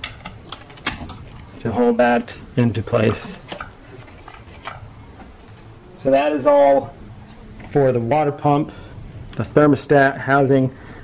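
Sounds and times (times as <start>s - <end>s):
handling noise: 0.0s - 6.0s.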